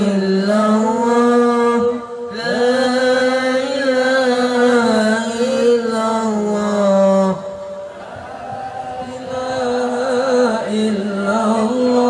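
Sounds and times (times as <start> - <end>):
man chanting call to prayer: 0.0 - 7.8, 8.8 - 12.0.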